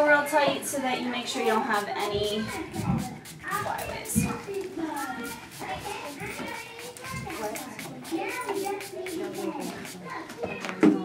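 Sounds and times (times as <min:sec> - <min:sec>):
chatter of children and adults: 0:00.0 - 0:11.0.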